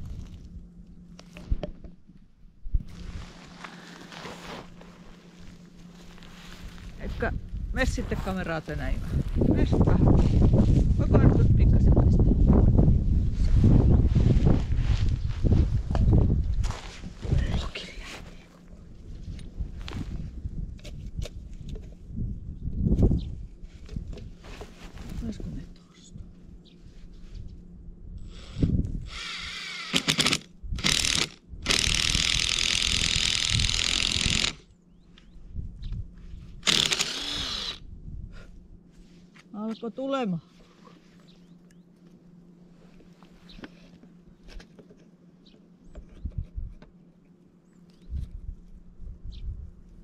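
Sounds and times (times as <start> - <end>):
low rumble: 4.9 - 29.3
drill motor whine: 28.3 - 34.6, 36.6 - 37.8.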